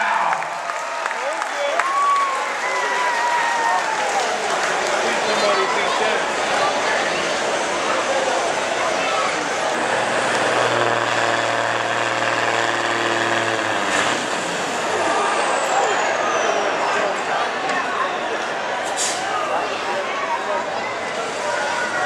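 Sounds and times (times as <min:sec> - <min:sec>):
crowd chatter: 0:00.0 - 0:22.0
diesel truck engine running: 0:06.0 - 0:15.8.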